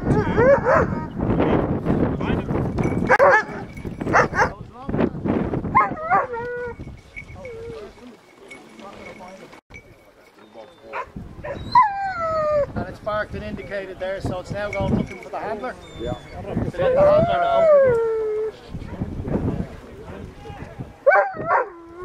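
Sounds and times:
dog barking: 0:00.4 - 0:00.9, 0:03.1 - 0:04.6, 0:05.8 - 0:06.4, 0:10.9 - 0:11.6, 0:21.1 - 0:21.7.

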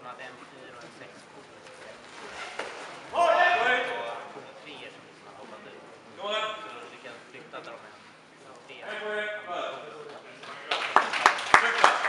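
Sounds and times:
person shouting in hall: 0:03.2 - 0:04.0.

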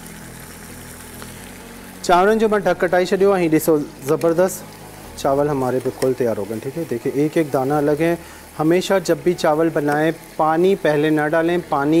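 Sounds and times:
even hiss: 0:00.0 - 0:12.0.

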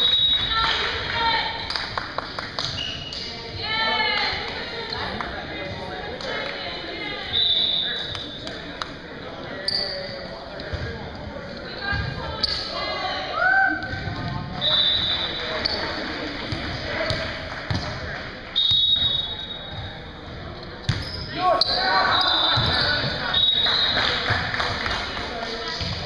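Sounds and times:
people talking in echoing gym: 0:00.0 - 0:26.0
sneakers squeaking on floor: 0:02.6 - 0:03.3, 0:09.6 - 0:11.1, 0:11.8 - 0:12.8, 0:13.8 - 0:16.1, 0:18.6 - 0:24.0
volleyball bouncing: 0:16.4 - 0:18.0, 0:20.8 - 0:21.2.

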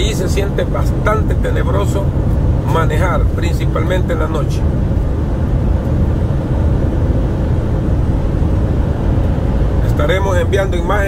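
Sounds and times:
road noise: 0:00.0 - 0:11.0
truck engine drone: 0:00.0 - 0:11.0.

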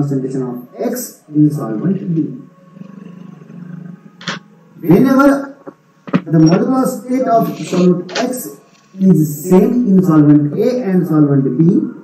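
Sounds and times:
man speaking: 0:00.0 - 0:02.4, 0:06.2 - 0:12.0
man humming hesitation sound: 0:02.4 - 0:04.5.

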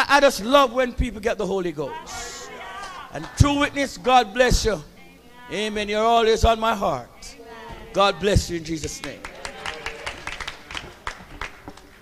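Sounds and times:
congregation hand claps: 0:07.9 - 0:12.0.

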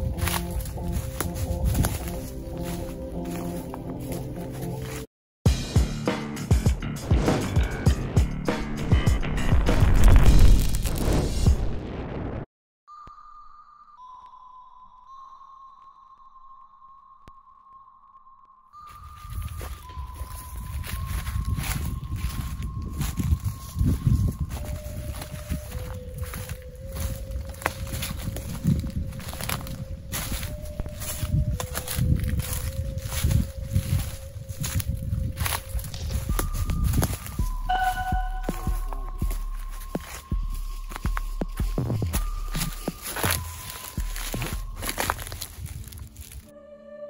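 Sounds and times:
footsteps crunching dry leaves: 0:00.0 - 0:05.1, 0:18.8 - 0:46.5
sustained music tones: 0:00.0 - 0:09.6, 0:12.9 - 0:47.0
fainter high tones: 0:35.6 - 0:47.0
faint electronic tone: 0:37.7 - 0:39.3.

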